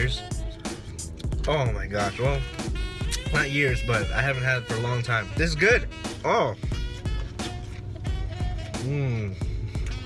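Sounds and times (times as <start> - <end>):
hip-hop instrumental with drum beat: 0.0 - 10.0
man humming while eating: 6.6 - 10.0.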